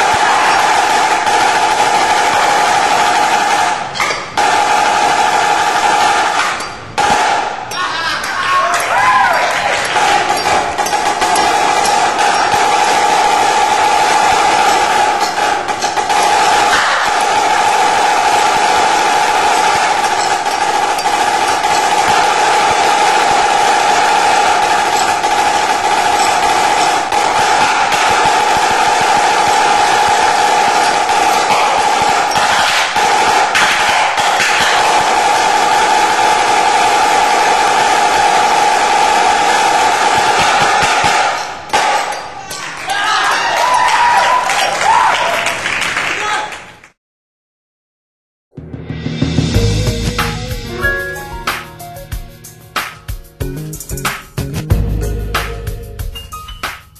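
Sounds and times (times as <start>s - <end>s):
snare drum rolls: 0.0s - 7.4s, 9.7s - 42.1s, 48.6s - 52.2s.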